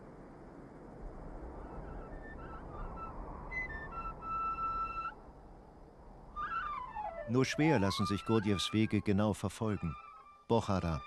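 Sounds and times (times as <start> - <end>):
flute music: 1.8 - 5.2, 6.4 - 11.0.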